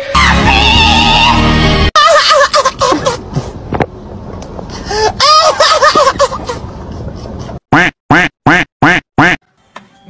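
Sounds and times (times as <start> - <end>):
laughter: 2.0 - 3.2, 5.2 - 7.6
cartoon honking animal call: 7.7 - 9.4.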